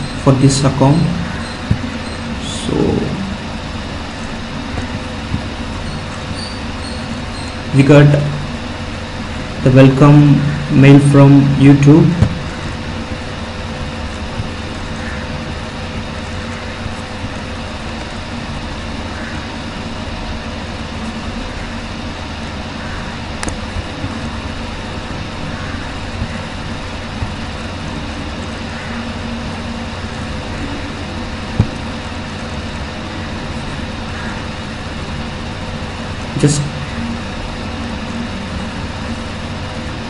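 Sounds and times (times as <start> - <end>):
microphone hiss: 0.0 - 40.0.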